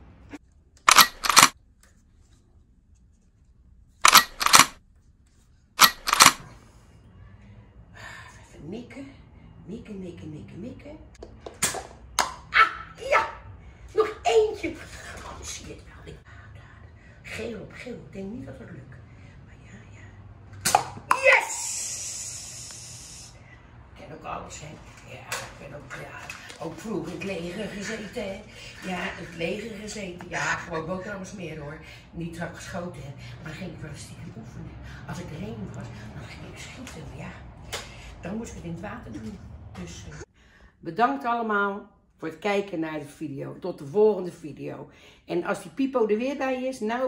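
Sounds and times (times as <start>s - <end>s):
toy blaster plastic clacks: 0.9s - 1.6s, 4.1s - 4.8s, 5.8s - 6.4s
high hiss: 21.5s - 23.4s.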